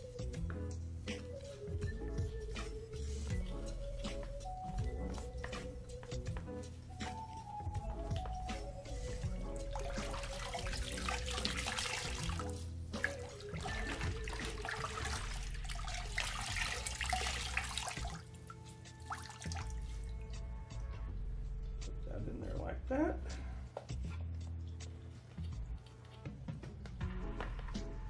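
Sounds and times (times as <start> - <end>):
background music: 0.0 - 28.0
water sloshing in a bucket: 9.2 - 20.5.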